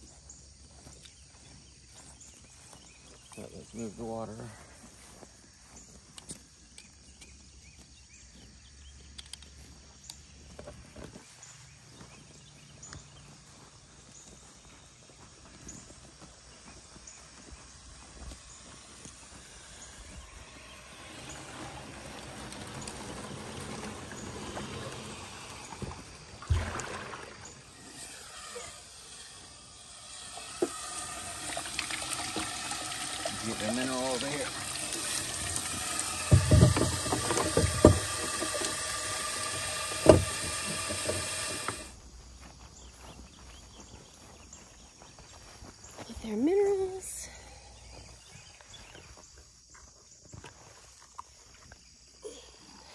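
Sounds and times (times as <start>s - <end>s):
plastic tub moved through grass: 17.6s - 44.6s
water splashing into tub: 20.0s - 41.9s.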